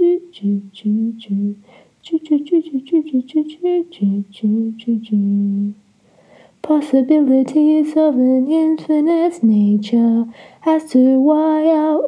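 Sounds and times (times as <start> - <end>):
person humming a slow tune: 0.0 - 5.8.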